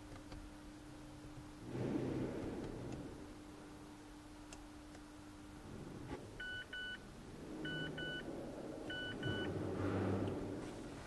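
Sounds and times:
faint low hum: 0.0 - 11.0
two-tone dashboard beeps: 6.4 - 7.0, 7.6 - 8.3, 8.9 - 9.6.

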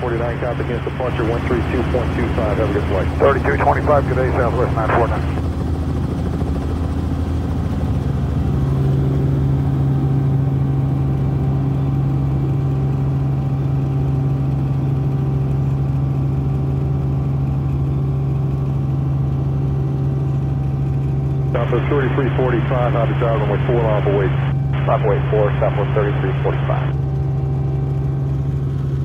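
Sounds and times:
low hum: 0.0 - 6.0, 20.1 - 29.0
helicopter engine and rotors: 0.0 - 29.0.

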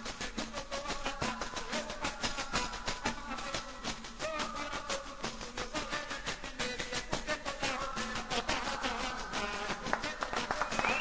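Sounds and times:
pandeiro jingles in fast beat: 0.0 - 11.0.

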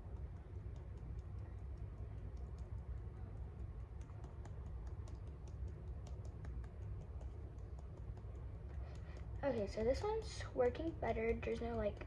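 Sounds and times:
low steady rumble: 0.0 - 12.0
paintbrush tapping on board: 0.1 - 12.0.

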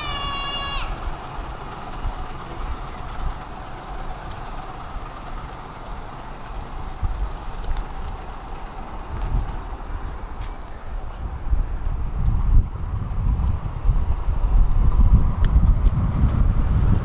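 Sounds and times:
heavy vehicle rumbling: 0.0 - 17.0.

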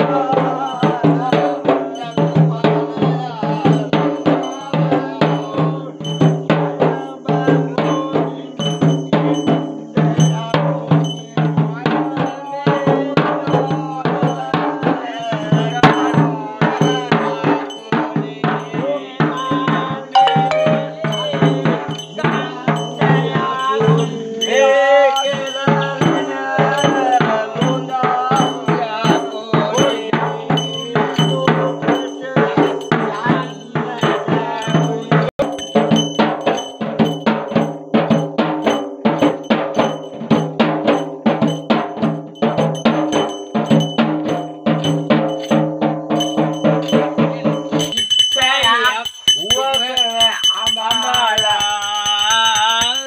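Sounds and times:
person chanting: 0.0 - 6.0, 18.7 - 35.3
drum beaten with a stick: 0.0 - 24.5, 25.3 - 53.0
metallic jingling percussion: 0.0 - 53.0.

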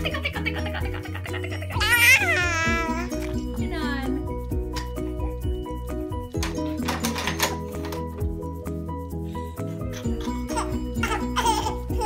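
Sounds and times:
background music with beat: 0.0 - 12.0
baby squealing: 1.8 - 3.2, 10.2 - 12.0.

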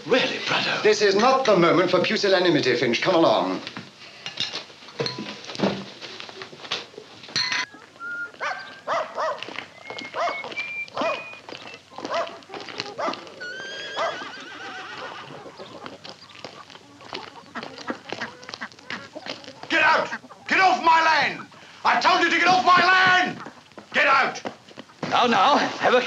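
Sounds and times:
farmyard animals calling: 6.0 - 25.1.

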